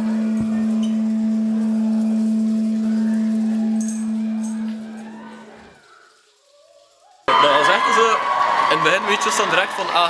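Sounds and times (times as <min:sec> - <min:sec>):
sustained synthesizer note: 0:00.0 - 0:05.8.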